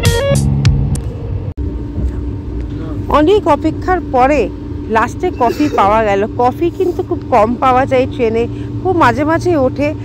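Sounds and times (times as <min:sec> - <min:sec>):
steady hum: 0:00.6 - 0:10.0
train carriage rumble: 0:01.0 - 0:10.0.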